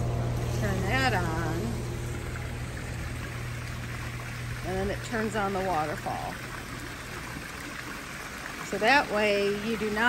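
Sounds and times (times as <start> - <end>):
low hum: 0.0 - 7.6
water splashing into pool: 0.1 - 10.0.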